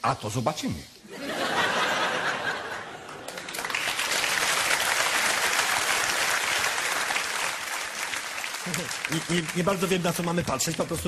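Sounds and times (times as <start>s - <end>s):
audience applauding: 2.4s - 11.0s.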